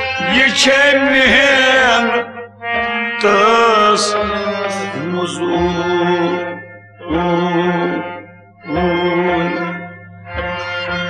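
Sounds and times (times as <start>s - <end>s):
man singing: 0.0s - 9.9s
harmonium drone: 0.0s - 11.0s.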